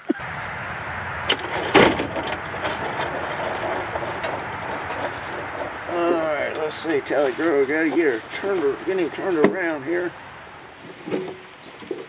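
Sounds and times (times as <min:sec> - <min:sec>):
sharp metallic clank: 0:00.2 - 0:09.6
utility vehicle engine idling: 0:00.2 - 0:12.0.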